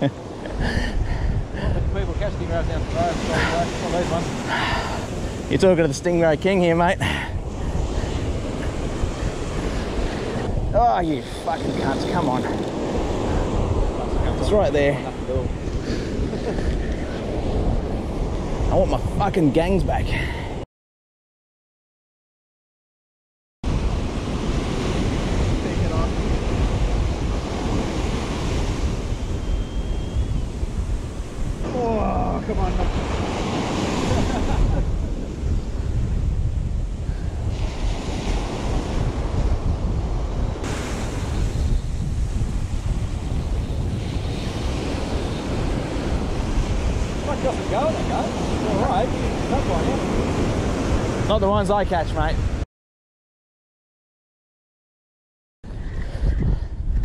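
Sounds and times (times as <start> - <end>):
ocean surf on a beach: 0.0 - 20.6, 23.7 - 52.6
wind buffeting microphone: 0.0 - 20.6, 23.6 - 52.6, 55.6 - 57.0.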